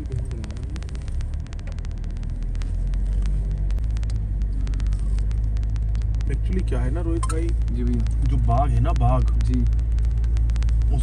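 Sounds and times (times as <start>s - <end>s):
car engine and road rumble: 0.0s - 11.0s
faint sharp clicks: 0.0s - 11.0s.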